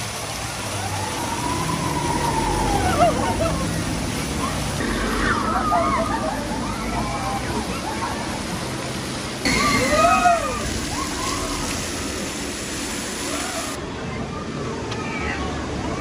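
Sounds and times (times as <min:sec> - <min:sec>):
water pouring onto track: 0:00.0 - 0:13.8
riders shouting and whooping: 0:00.3 - 0:08.8, 0:09.5 - 0:12.2, 0:13.2 - 0:13.8.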